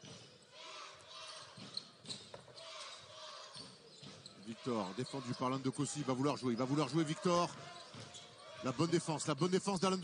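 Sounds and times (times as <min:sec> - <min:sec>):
basketball bouncing on hardwood: 0:01.6 - 0:02.5, 0:03.6 - 0:04.4
arena crowd murmur: 0:02.5 - 0:10.0.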